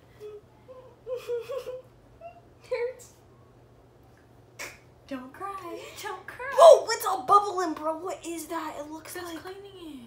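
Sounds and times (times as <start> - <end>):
girl laughing: 0.7 - 2.4.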